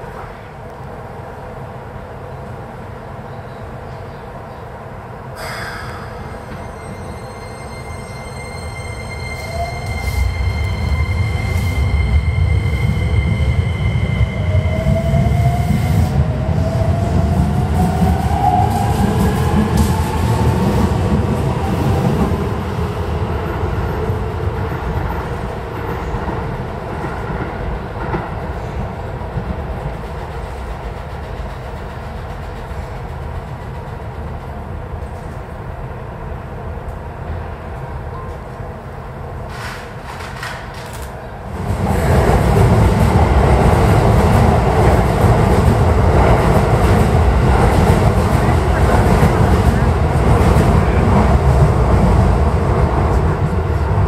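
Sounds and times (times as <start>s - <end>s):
electric train rumble: 0.0s - 54.0s.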